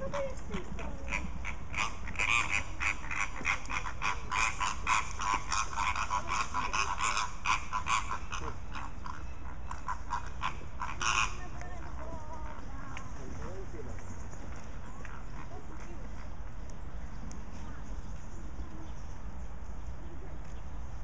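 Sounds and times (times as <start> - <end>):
flamingos honking: 0.0 - 13.7.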